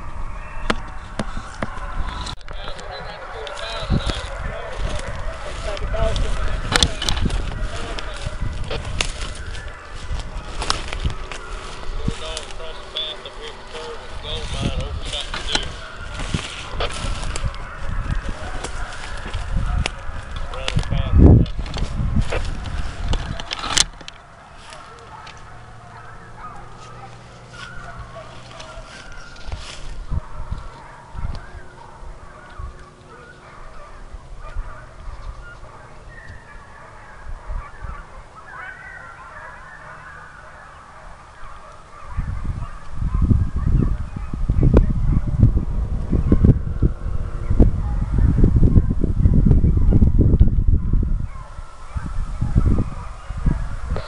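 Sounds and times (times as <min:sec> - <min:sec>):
distant hounds baying: 0:00.0 - 0:54.0
wind buffeting microphone: 0:00.0 - 0:54.0.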